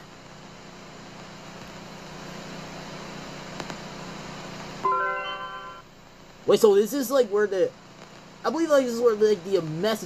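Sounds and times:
static hiss: 0:00.0 - 0:10.0
held musical chord: 0:04.8 - 0:05.8.

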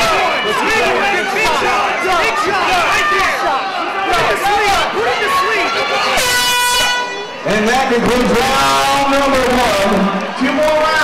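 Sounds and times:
horn blast: 0:06.2 - 0:07.3.

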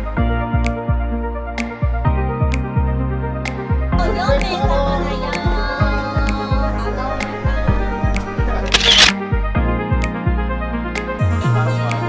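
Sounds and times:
background music with steady beat: 0:00.0 - 0:12.0
camera shutter click: 0:08.7 - 0:09.2.

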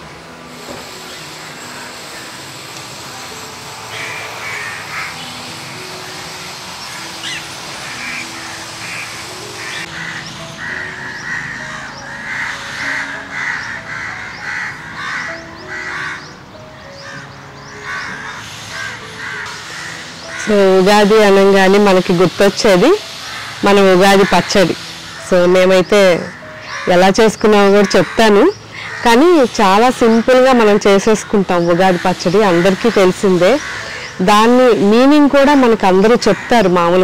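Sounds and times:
soft music with held notes: 0:00.0 - 0:37.0
crows cawing: 0:03.9 - 0:06.2, 0:06.8 - 0:16.4, 0:17.0 - 0:21.4, 0:23.1 - 0:34.8, 0:35.9 - 0:37.0.

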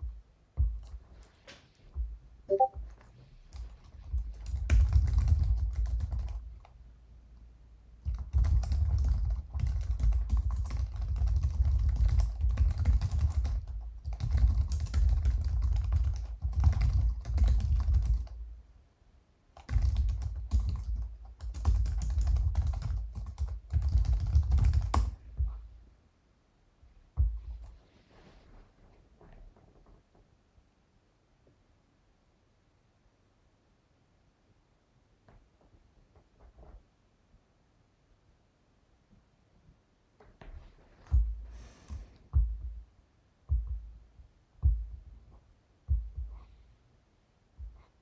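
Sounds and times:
typing on computer keyboard: 0:03.5 - 0:06.8, 0:08.0 - 0:18.4, 0:19.6 - 0:25.2.

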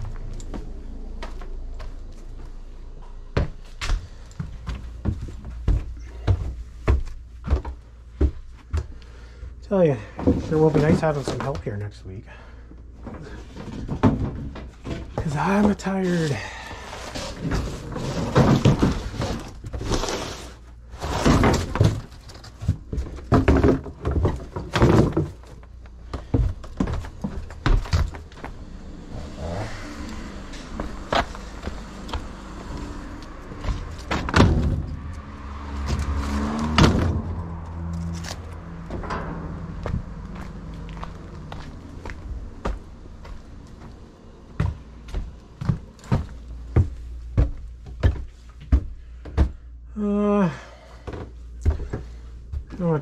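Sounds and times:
footsteps: 0:00.0 - 0:09.4, 0:13.0 - 0:49.7
steady low rumble: 0:00.0 - 0:09.7, 0:25.4 - 0:49.9
knocks and thuds of junk handled: 0:10.0 - 0:11.7, 0:13.0 - 0:19.9, 0:21.0 - 0:28.6, 0:33.6 - 0:40.4.

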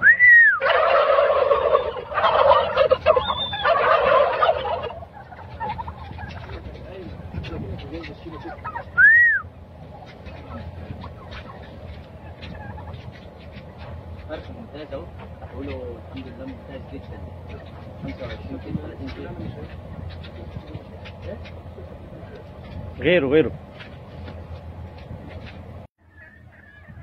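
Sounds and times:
turkeys gobbling: 0:00.0 - 0:23.0, 0:23.7 - 0:27.0.

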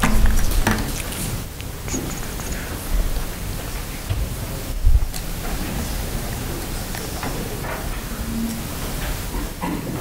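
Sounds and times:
low thumps: 0:00.0 - 0:01.0, 0:04.0 - 0:05.5
steady room hiss: 0:00.0 - 0:10.0.

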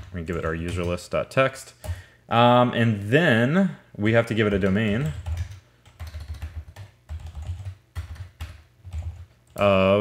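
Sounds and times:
computer keyboard typing: 0:00.0 - 0:01.1, 0:04.4 - 0:09.8.

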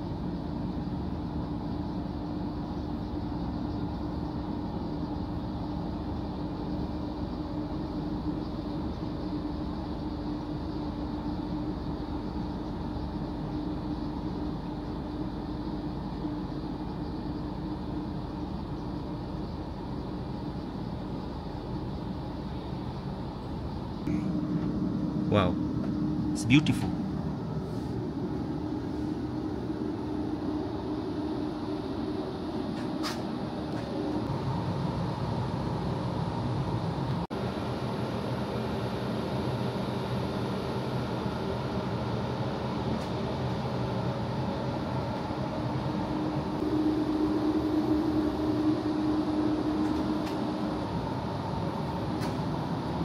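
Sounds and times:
train carriage hum: 0:00.0 - 0:53.0.

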